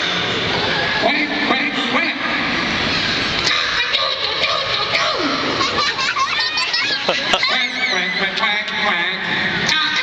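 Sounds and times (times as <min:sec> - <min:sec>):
audience chattering: 0:00.0 - 0:10.0.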